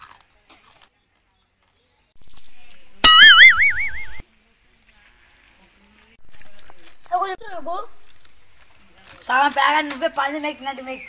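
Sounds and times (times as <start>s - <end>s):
cartoon boing sound effect: 3.0s - 4.2s.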